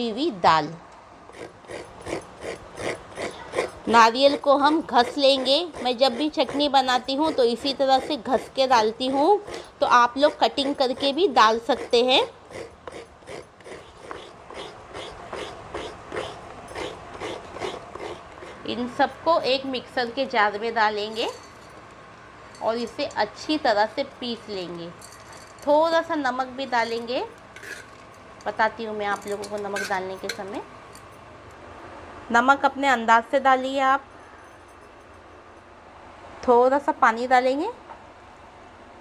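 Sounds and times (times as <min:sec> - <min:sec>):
coconut grated by hand: 0:01.3 - 0:19.7, 0:26.8 - 0:28.0.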